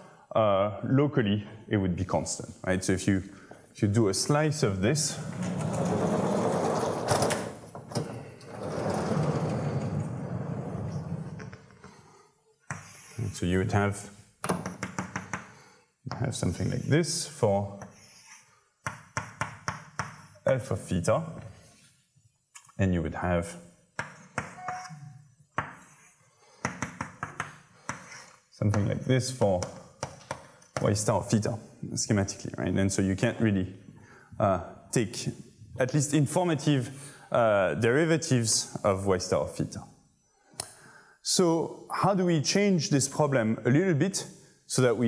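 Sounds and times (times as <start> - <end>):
chalk tapping on blackboard: 12.7 - 13.1, 14.6 - 15.5, 17.8 - 20.6, 24.0 - 24.6, 25.6 - 30.9.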